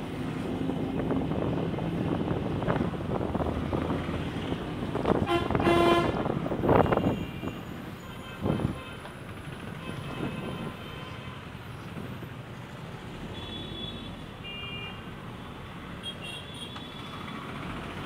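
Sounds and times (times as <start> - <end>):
engine and road rumble: 0.0 - 18.0
vehicle horn tooting: 5.2 - 6.2, 6.8 - 9.1, 9.8 - 11.4.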